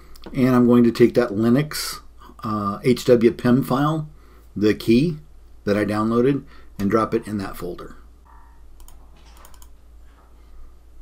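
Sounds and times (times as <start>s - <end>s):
computer mouse clicks: 8.3s - 9.8s.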